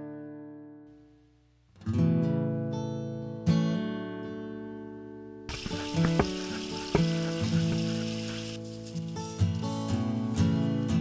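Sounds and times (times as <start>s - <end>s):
strummed acoustic guitar: 1.7s - 11.0s
steady hiss: 5.5s - 11.0s.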